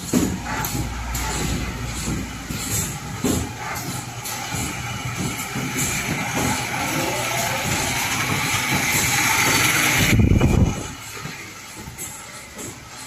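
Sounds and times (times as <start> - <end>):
machine hiss and clatter: 0.0 - 13.0
heavy low rumble: 10.0 - 11.2.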